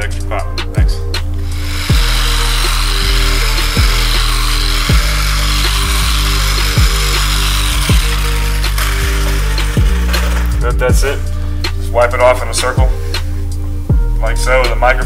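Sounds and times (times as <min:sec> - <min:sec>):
background music with deep bass: 0:00.0 - 0:15.0
electric polisher whirring: 0:01.4 - 0:10.8.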